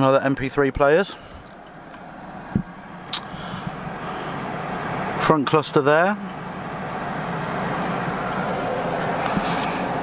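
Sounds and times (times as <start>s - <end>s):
low hum and hiss in car cabin: 0.0s - 10.0s.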